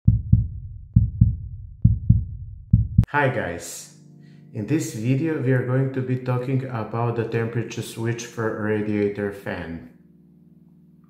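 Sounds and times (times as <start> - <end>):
deep heartbeat thumps music: 0.0 - 3.1.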